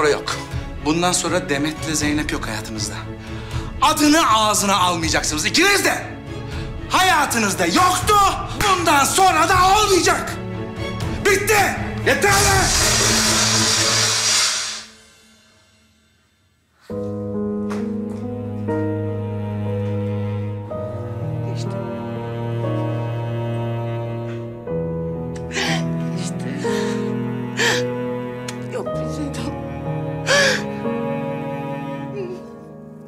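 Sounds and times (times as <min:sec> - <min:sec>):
slow background music chords: 0:00.0 - 0:33.0
cymbal-like wash: 0:12.3 - 0:16.4
person crying sob: 0:25.5 - 0:26.9.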